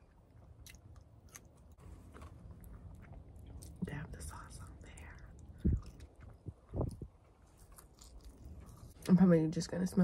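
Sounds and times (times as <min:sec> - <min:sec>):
chewing fries: 0:00.0 - 0:09.3.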